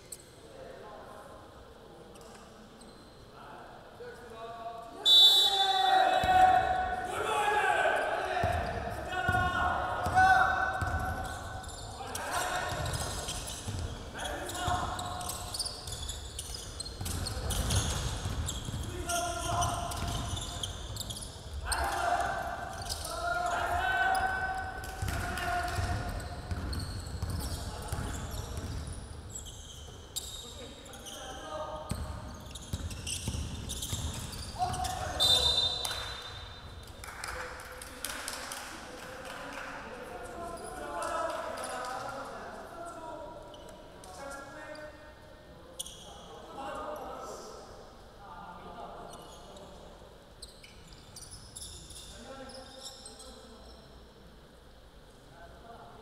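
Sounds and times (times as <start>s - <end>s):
short high whistle tone: 5.0s - 5.8s
basketball bouncing on wooden court: 8.4s - 10.2s, 10.8s - 11.4s, 12.7s - 13.9s, 14.6s - 21.2s, 24.8s - 28.9s, 31.9s - 35.0s.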